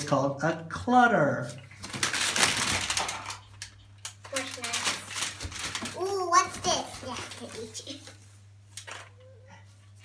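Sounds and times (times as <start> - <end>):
plastic wrappers crinkling: 1.7 - 8.1.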